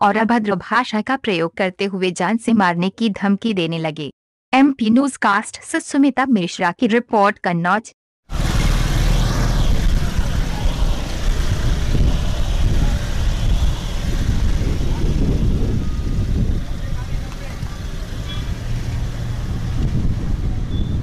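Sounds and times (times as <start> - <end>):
motor traffic rumble: 8.3 - 21.0.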